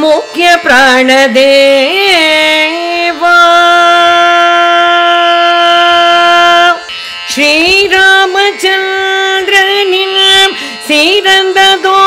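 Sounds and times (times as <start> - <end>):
woman singing a long note: 0.0 - 12.0.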